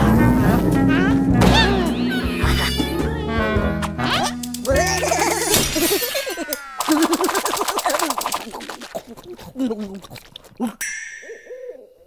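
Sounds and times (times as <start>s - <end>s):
chime-like sparkle ting: 10.8s - 11.9s.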